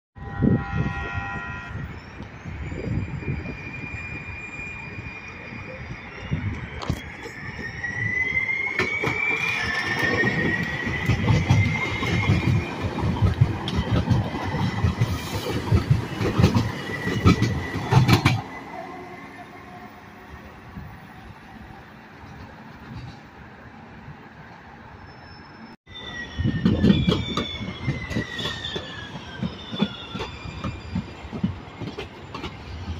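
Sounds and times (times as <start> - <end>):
train horn: 0.2 - 2.1
train wheels clacking over rails: 8.7 - 18.6, 26.6 - 32.9.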